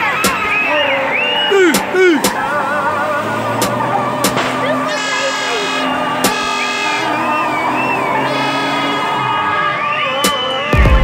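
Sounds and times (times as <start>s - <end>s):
wavering voices or music: 0.0s - 11.0s
blaring horn-like tone: 4.6s - 10.6s.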